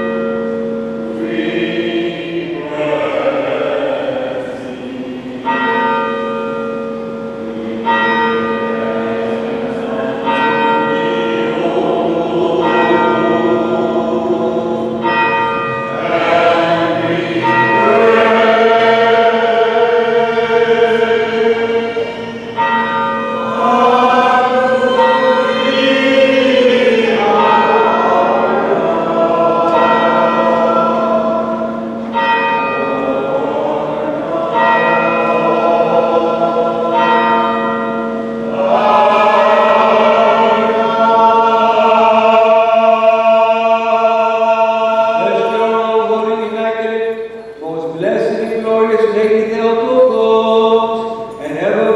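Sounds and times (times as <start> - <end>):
church bell ringing: 0.0 - 51.9
voices chanting: 1.1 - 6.2, 7.4 - 51.9
low held drone note: 6.8 - 37.0.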